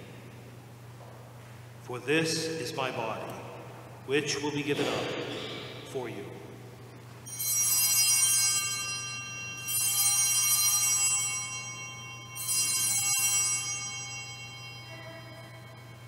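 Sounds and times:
altar bells ringing: 0:07.2 - 0:16.0.

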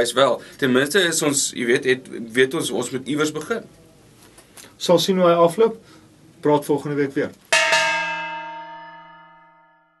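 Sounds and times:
struck bell-like chime: 0:07.6 - 0:10.0.

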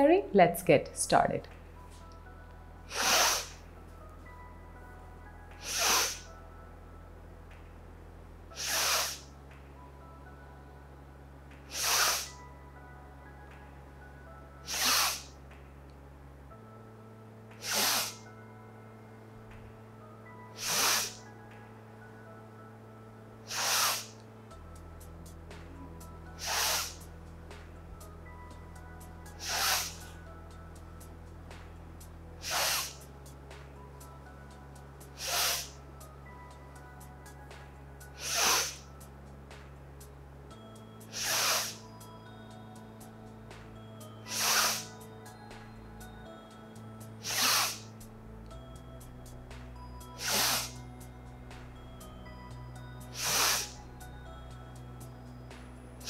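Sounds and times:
soft background music: 0:00.0 - 0:56.0
relaxed exhalations: 0:02.8 - 0:03.7, 0:05.6 - 0:06.4, 0:08.5 - 0:09.3, 0:11.6 - 0:12.4, 0:14.6 - 0:15.3, 0:17.6 - 0:18.3, 0:20.5 - 0:21.3, 0:23.4 - 0:24.2, 0:26.3 - 0:27.0, 0:29.3 - 0:30.2, 0:32.4 - 0:33.0, 0:35.1 - 0:35.8, 0:38.1 - 0:38.9, 0:41.0 - 0:42.0, 0:44.2 - 0:45.0, 0:47.2 - 0:48.0, 0:50.1 - 0:50.8, 0:53.1 - 0:53.9
woman's sharp nasal inhalations: 0:02.9 - 0:03.6, 0:05.6 - 0:06.3, 0:08.6 - 0:09.3, 0:11.7 - 0:12.4, 0:14.7 - 0:15.3, 0:17.6 - 0:18.2, 0:20.6 - 0:21.2, 0:23.5 - 0:24.2, 0:26.4 - 0:27.0, 0:29.4 - 0:30.0, 0:32.4 - 0:33.0, 0:35.2 - 0:35.8, 0:38.2 - 0:38.8, 0:41.1 - 0:41.8, 0:44.3 - 0:45.0, 0:47.2 - 0:47.8, 0:50.2 - 0:50.8, 0:53.2 - 0:53.8.

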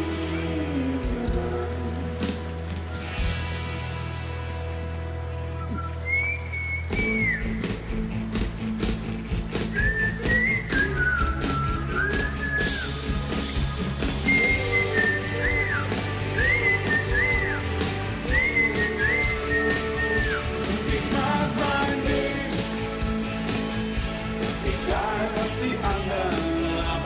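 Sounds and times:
rock backing track: 0:00.0 - 0:27.0
whistled melody: 0:05.4 - 0:08.0, 0:09.5 - 0:23.2.

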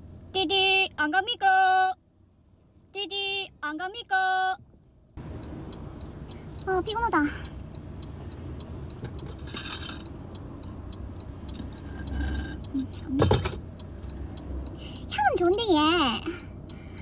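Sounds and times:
car road rumble: 0:00.0 - 0:17.0
turn signal ticking: 0:03.1 - 0:17.0.

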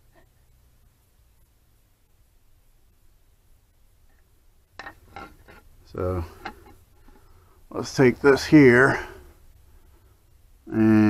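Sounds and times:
handling knocks and scrapes: 0:04.8 - 0:05.7.

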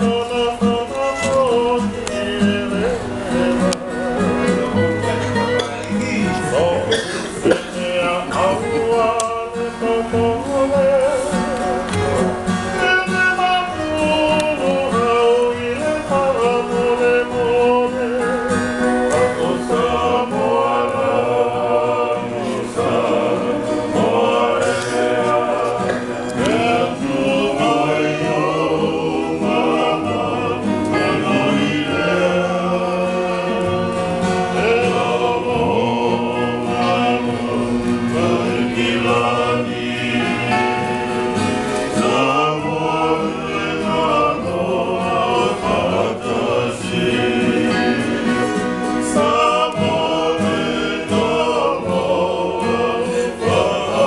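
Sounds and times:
acoustic guitar: 0:00.0 - 0:54.0
men singing in harmony: 0:00.0 - 0:54.0
violin: 0:00.5 - 0:06.7.

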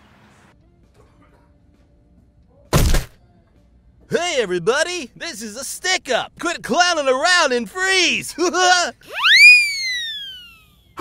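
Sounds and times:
cartoon whistle sweeping tone: 0:09.1 - 0:10.7.

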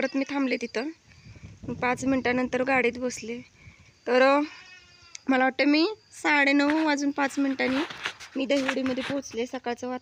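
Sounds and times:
woman speaking: 0:00.0 - 0:01.0, 0:01.7 - 0:04.5, 0:05.2 - 0:10.0.

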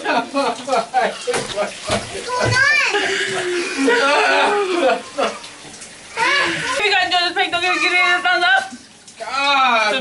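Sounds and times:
shower water running: 0:00.0 - 0:10.0.

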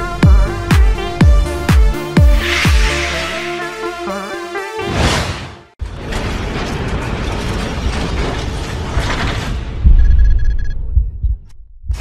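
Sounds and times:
dense whooshing rush: 0:02.1 - 0:04.4
burst of noise: 0:02.2 - 0:04.0.

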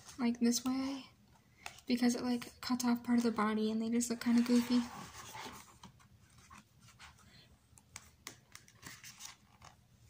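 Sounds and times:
glossy pages turning: 0:04.2 - 0:07.2, 0:07.9 - 0:09.8.

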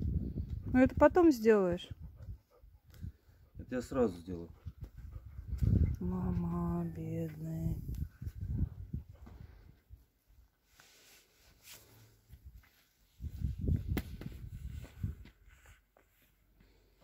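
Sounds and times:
low thuds on loose soil: 0:12.3 - 0:15.5.

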